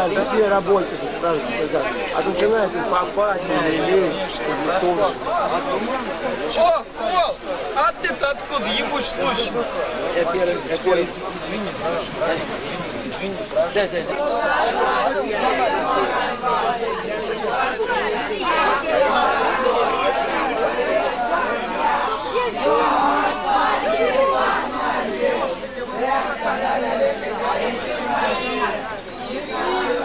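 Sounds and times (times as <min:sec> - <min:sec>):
group of people chattering: 0:00.0 - 0:30.0.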